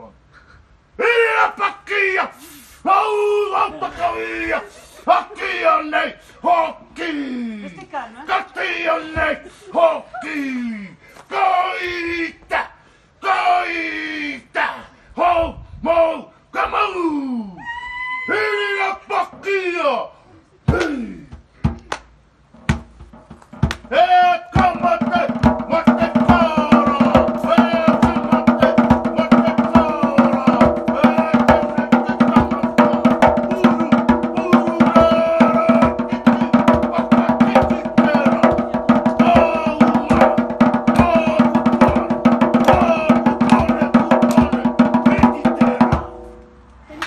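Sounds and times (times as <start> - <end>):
fast stick drumming: 22.6 - 24.0, 24.6 - 46.4
voice chanting held notes: 24.6 - 46.4.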